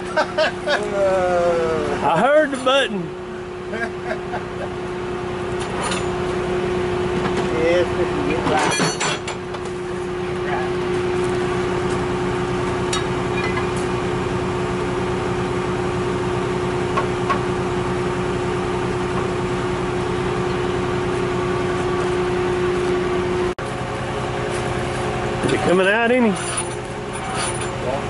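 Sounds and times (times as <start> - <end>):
diesel engine under load: 0.0 - 28.0.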